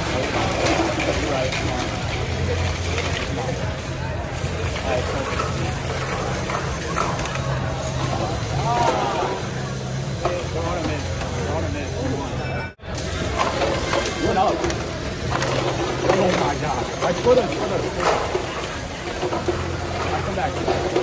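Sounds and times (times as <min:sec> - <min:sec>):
spectators chatting: 0:00.0 - 0:21.0.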